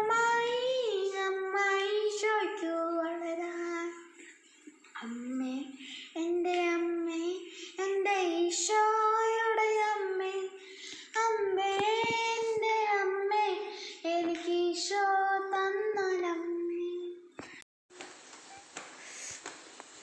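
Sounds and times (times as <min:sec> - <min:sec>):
boy singing unaccompanied: 0:00.0 - 0:04.2, 0:05.0 - 0:17.3.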